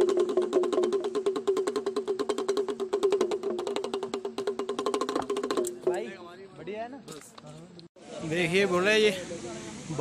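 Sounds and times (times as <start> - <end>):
hand drum rattling roll: 0.0 - 6.2.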